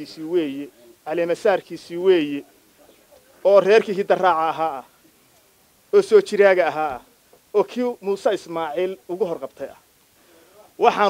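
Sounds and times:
man speaking: 0:00.0 - 0:05.0, 0:05.9 - 0:11.0.

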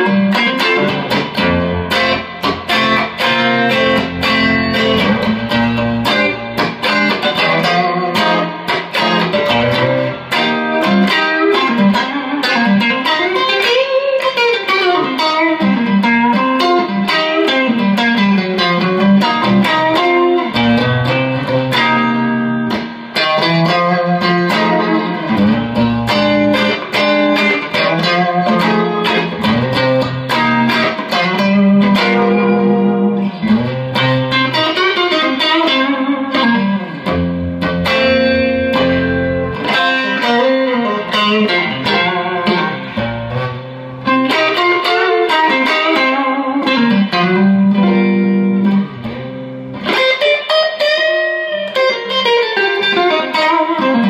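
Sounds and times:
funky blues electric guitar: 0:00.0 - 0:54.0.

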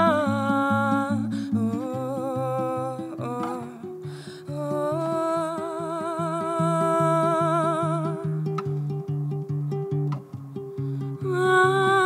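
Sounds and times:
woman humming: 0:00.0 - 0:08.3
fingerpicked acoustic guitar: 0:00.0 - 0:12.0.

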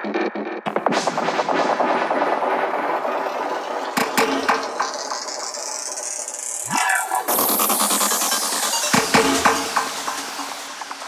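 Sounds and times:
dense synthesized textures: 0:00.7 - 0:11.0
hiss rising in pitch: 0:05.0 - 0:11.0.

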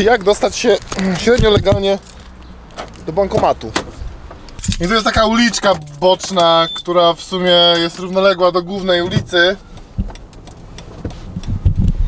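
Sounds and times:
van engine and road rumble: 0:00.0 - 0:12.0.

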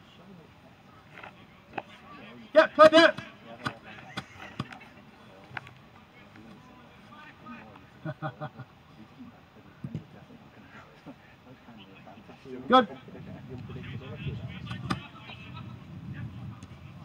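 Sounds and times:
voices shouting: 0:01.2 - 0:05.2, 0:13.8 - 0:16.0.

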